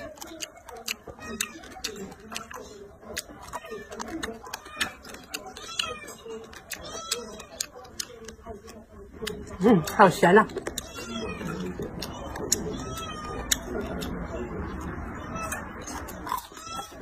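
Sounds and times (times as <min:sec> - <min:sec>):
crunchy chewing: 0:00.0 - 0:17.0.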